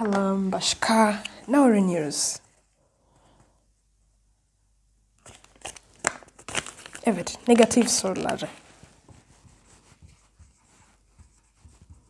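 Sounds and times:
marker writing on whiteboard: 9.3 - 12.0.

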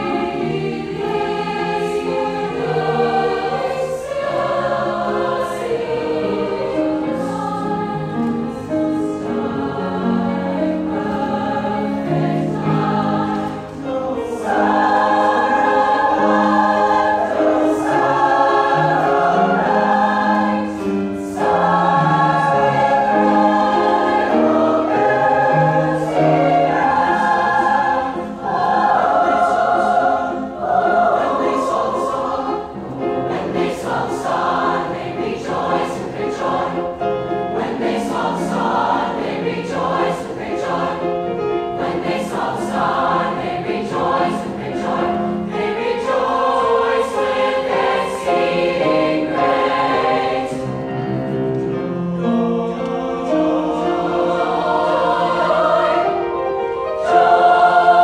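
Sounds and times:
mixed choir singing chords: 0.0 - 58.0
piano accompaniment: 0.0 - 58.0.

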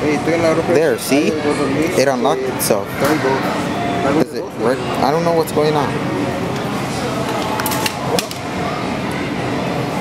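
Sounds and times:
hum of voices: 0.0 - 10.0.

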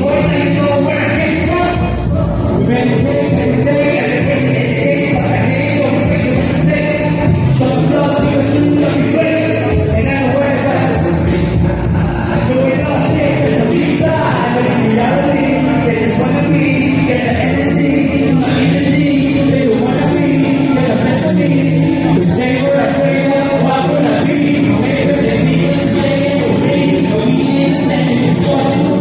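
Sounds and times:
rapping over a backing track: 0.0 - 29.0.

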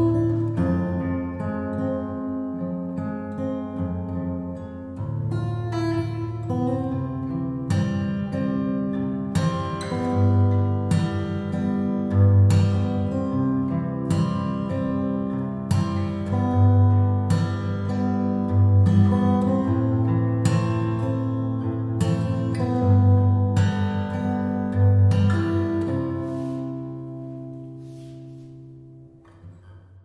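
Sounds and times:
fingerpicked acoustic guitar: 0.0 - 30.0.

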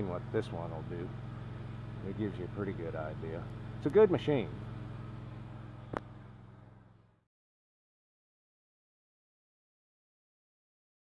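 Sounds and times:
welder engine running: 0.0 - 7.2.

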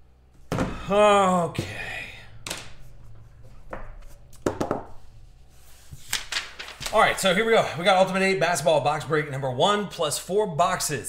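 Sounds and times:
paper sheet handling taps: 5.9 - 7.0.

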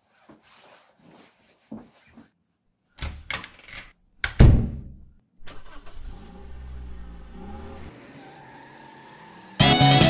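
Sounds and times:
car engine revving: 5.6 - 10.0.

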